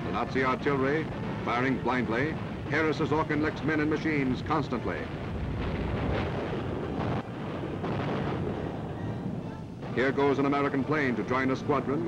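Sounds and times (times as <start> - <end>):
artillery explosions rumbling: 0.0 - 12.0
loud artillery blasts: 0.0 - 12.0.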